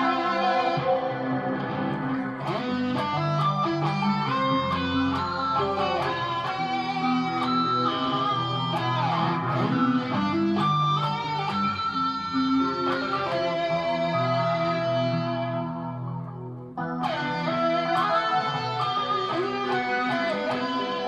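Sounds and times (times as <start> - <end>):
electric guitar lead: 0.0 - 21.0
pre-recorded music loop: 0.0 - 21.0.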